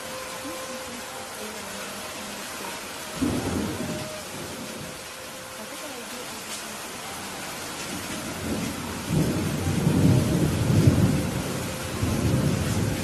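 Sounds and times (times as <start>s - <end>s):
steady rain: 0.0s - 13.0s
low rolling thunder: 3.2s - 5.0s, 7.9s - 13.0s.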